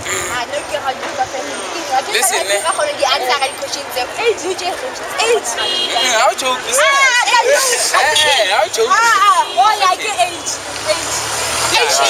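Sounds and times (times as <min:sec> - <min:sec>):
people talking: 0:00.1 - 0:12.0.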